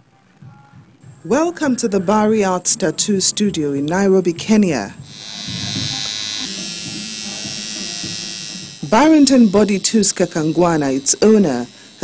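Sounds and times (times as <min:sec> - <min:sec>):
tattoo machine buzzing: 0:05.0 - 0:12.0.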